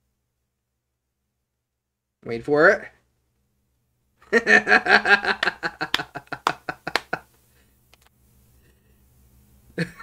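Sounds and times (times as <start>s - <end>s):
man laughing hard: 4.3s - 7.3s, 9.8s - 10.0s.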